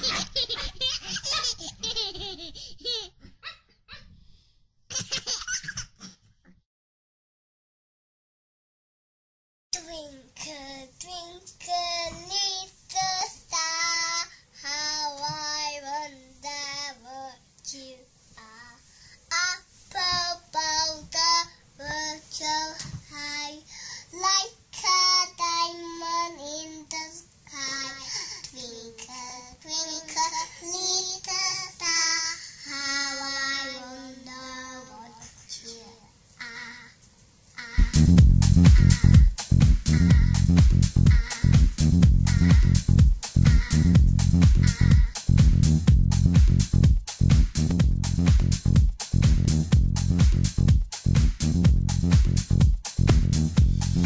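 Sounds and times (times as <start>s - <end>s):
child singing: 9.7s - 37.0s, 38.6s - 39.3s, 39.9s - 40.4s, 41.1s - 42.8s, 43.4s - 45.2s.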